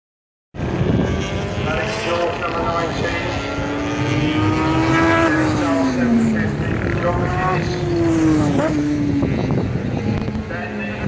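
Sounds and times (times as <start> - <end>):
motorcycle engine passing: 0.6 - 11.0.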